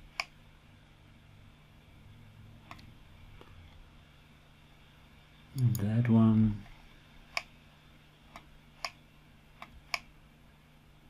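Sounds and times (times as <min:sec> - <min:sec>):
faint steady hum: 0:00.0 - 0:11.0
computer mouse clicking: 0:00.1 - 0:00.4, 0:02.7 - 0:02.9, 0:07.3 - 0:07.6, 0:08.3 - 0:09.0, 0:09.6 - 0:10.1.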